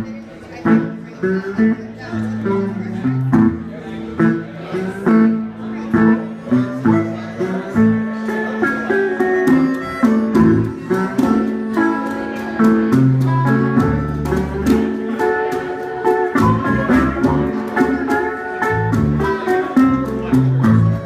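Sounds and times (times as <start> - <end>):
bass guitar: 0.0 - 21.0
guitar: 0.0 - 21.0
harmonica: 6.5 - 20.0
hand drum beat: 9.2 - 21.0.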